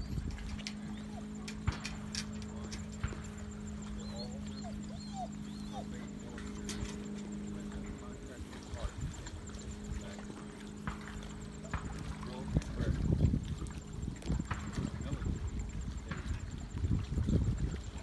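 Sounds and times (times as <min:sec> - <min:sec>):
faint distant speech: 0:00.0 - 0:16.6
steady low hum: 0:00.0 - 0:18.0
wind rumble on microphone: 0:00.0 - 0:18.0.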